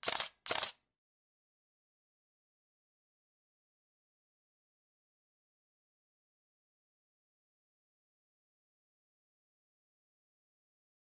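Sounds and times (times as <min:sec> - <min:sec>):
camera shutter clicks: 0:00.0 - 0:00.8.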